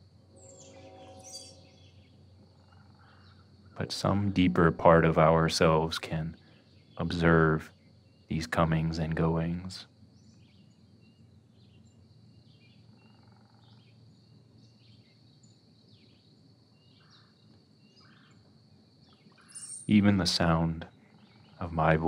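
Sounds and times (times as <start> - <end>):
faint bird chirps: 0.0 - 22.0
faint high-pitched whine: 0.0 - 22.0.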